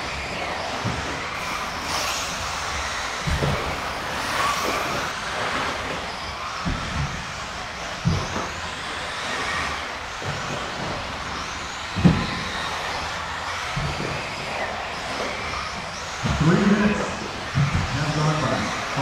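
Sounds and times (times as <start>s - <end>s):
cars thumping on track: 0.0s - 16.6s
rc car motors whining: 0.0s - 19.0s.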